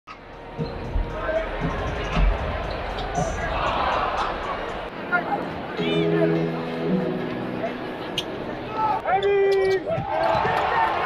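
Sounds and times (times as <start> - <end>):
crowd chatter in large hall: 0.1 - 11.0.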